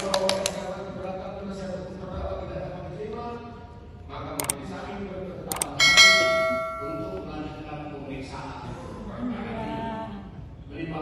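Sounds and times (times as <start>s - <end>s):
mouse click: 5.5s - 7.2s
bright bell ding: 5.5s - 7.3s.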